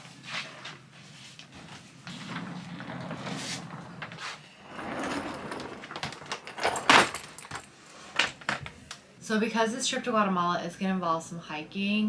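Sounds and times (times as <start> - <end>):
clothes and bags rustling: 0.0 - 8.9
suitcase set down on wooden floor: 5.8 - 8.7.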